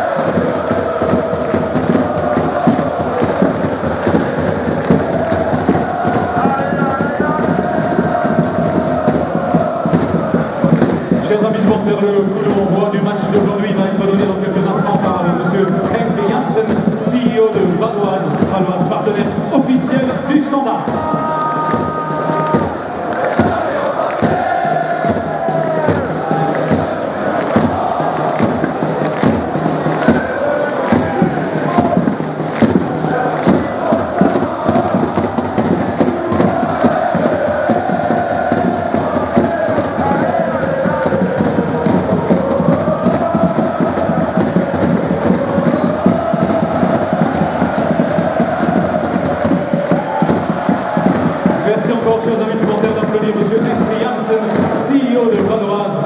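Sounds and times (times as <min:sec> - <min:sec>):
sharp percussive beats: 0:00.0 - 0:56.0
stadium crowd chanting: 0:00.0 - 0:56.0.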